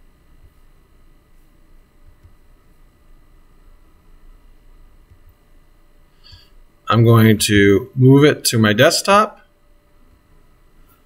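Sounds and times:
microphone hiss and hum: 0.0s - 11.0s.

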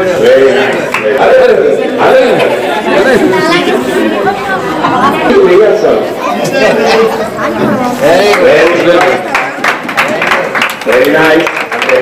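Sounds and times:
children chattering: 0.0s - 9.6s.

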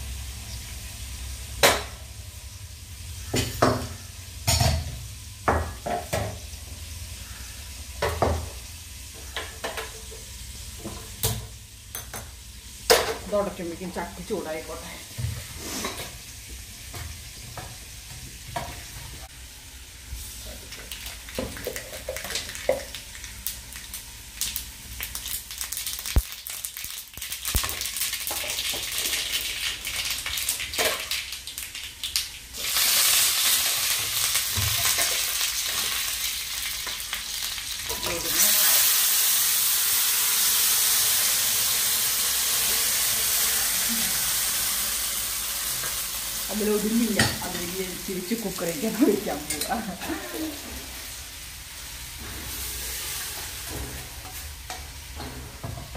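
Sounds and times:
food sizzling in a pan: 0.0s - 55.9s
kitchen utensils clinking: 48.8s - 50.8s.

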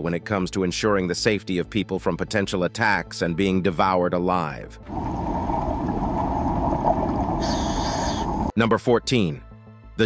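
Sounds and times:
boat motor rumbling on water: 4.9s - 8.5s.

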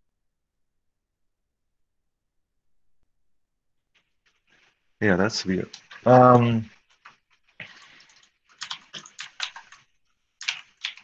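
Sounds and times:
typing on computer keyboard: 8.1s - 11.0s.

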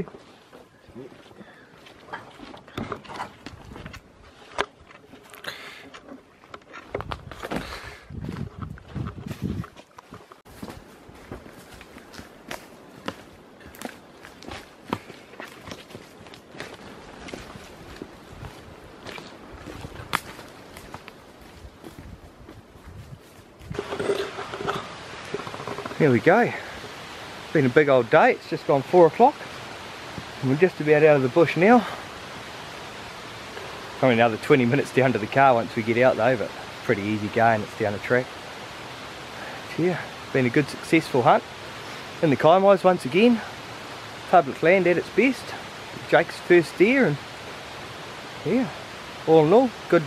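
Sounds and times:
footsteps on forest track: 0.0s - 32.1s.

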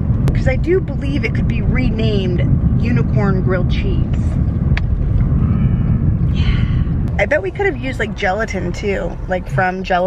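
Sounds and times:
road and engine rumble in car: 0.0s - 10.0s.

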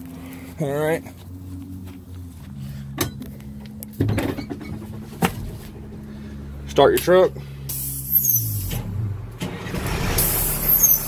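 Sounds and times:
steady low hum: 0.0s - 9.3s
metallic clunks and knocks: 3.9s - 5.7s.

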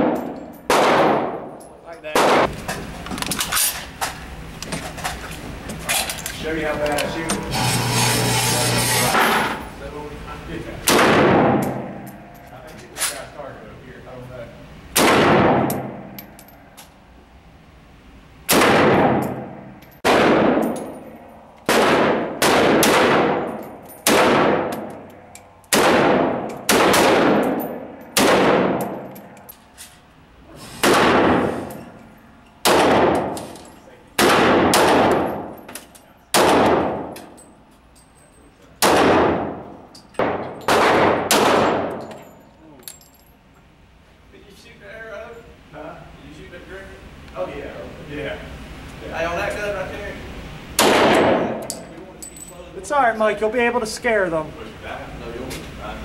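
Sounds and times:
gunshots echoing indoors: 0.0s - 2.5s, 10.8s - 12.3s, 14.9s - 16.2s, 18.5s - 21.0s, 21.6s - 29.1s, 30.8s - 31.6s, 32.6s - 33.4s, 34.2s - 35.6s, 36.3s - 37.2s, 38.8s - 42.0s, 50.8s - 51.7s.

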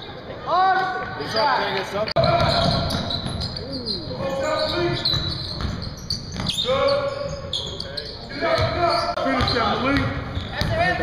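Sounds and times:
players calling out: 2.2s - 9.9s
basketball bouncing on wooden floor: 9.4s - 10.9s.

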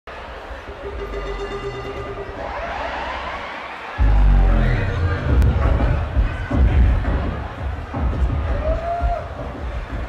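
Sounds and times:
crowd shouting and cheering: 0.1s - 10.0s.

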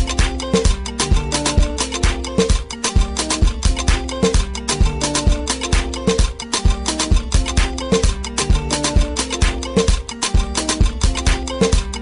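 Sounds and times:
dance music with kick drum: 0.0s - 12.0s.

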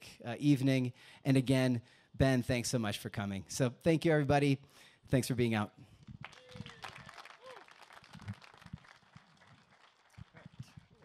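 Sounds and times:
scattered audience applause: 6.2s - 11.0s.

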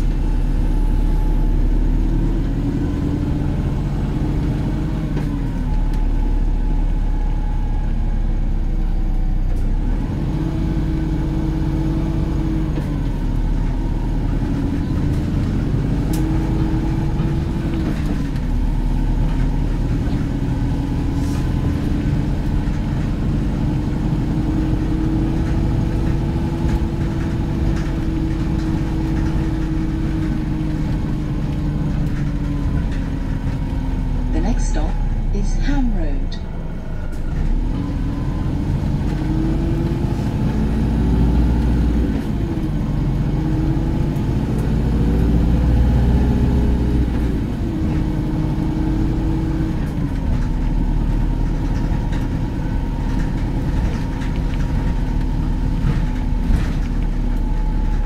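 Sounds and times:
bus drivetrain running: 0.0s - 58.0s.

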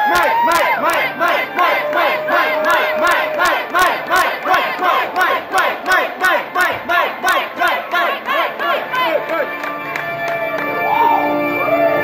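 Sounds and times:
sharp rhythmic claps: 0.0s - 11.0s
audience shouting and cheering: 0.0s - 12.0s.

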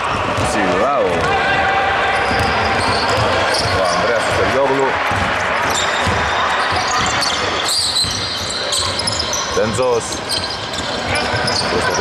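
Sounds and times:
basketball bouncing on hardwood: 2.3s - 4.5s, 5.1s - 7.4s.

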